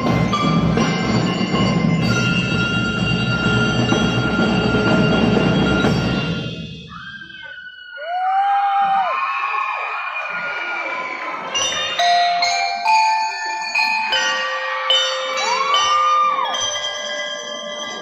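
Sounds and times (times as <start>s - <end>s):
mallet keyboard melody: 0.0s - 6.6s, 11.5s - 18.0s
long whoops: 6.9s - 11.2s
children cheering and shouting: 6.9s - 12.0s, 15.1s - 17.0s.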